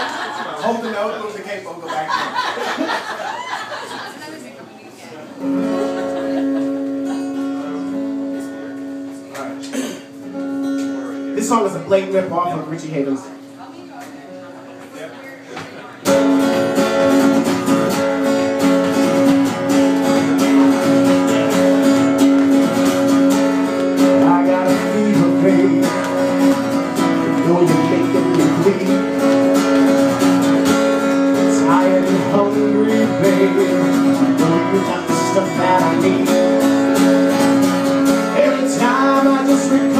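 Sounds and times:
acoustic guitar strumming: 0:05.4 - 0:39.9.

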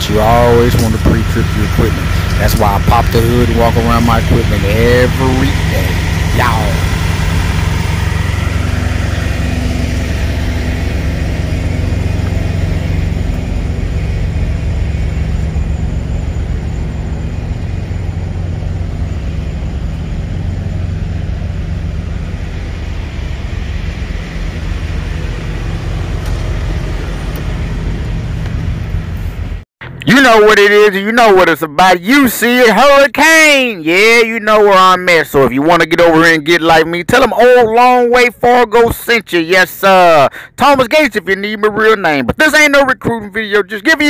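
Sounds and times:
diesel truck engine idling: 0:00.0 - 0:30.0, 0:39.4 - 0:41.0.

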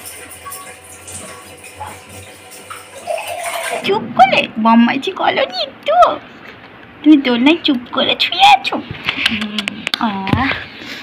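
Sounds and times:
hands washing under water: 0:00.0 - 0:03.8
tap water running into sink: 0:00.0 - 0:04.0.

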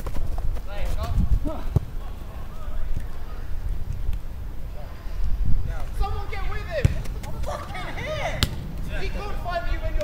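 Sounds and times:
footballers shouting: 0:05.8 - 0:10.0
football kick thud: 0:06.8 - 0:07.3.

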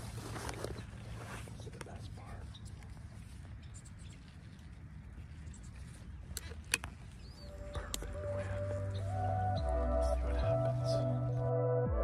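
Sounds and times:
person whispering: 0:01.7 - 0:02.5, 0:09.6 - 0:11.2.

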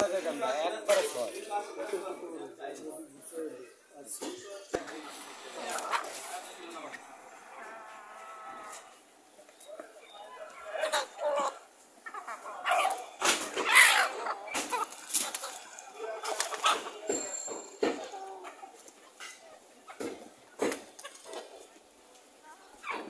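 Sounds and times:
chickens calling and clucking: 0:03.6 - 0:23.0.

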